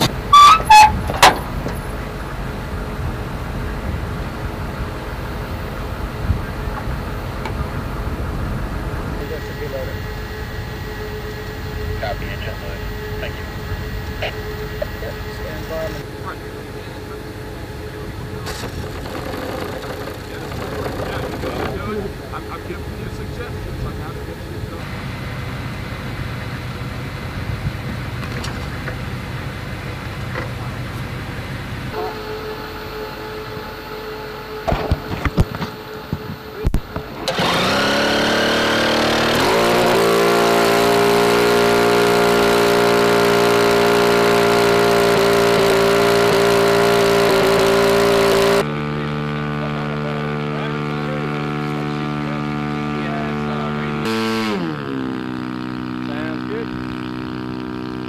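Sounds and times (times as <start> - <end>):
aircraft engine running: 0.0 - 58.0
starter clicks: 18.4 - 21.8.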